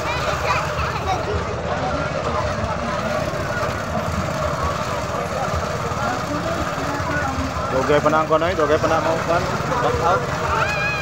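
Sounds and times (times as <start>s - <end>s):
crowd of voices chattering: 0.0s - 11.0s.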